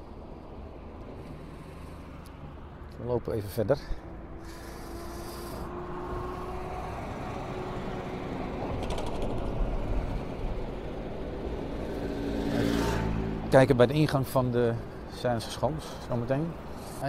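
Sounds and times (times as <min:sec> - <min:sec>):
low traffic rumble: 0:00.0 - 0:17.0.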